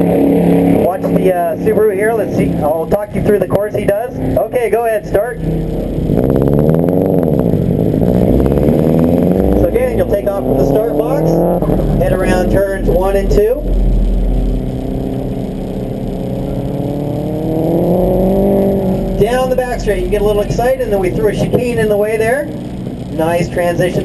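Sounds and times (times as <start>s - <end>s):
car engine revving and accelerating: 0.0s - 24.0s.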